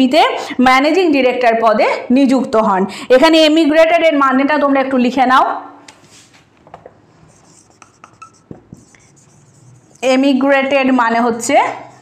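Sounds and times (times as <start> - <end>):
pen scratching while writing: 7.2 - 10.3.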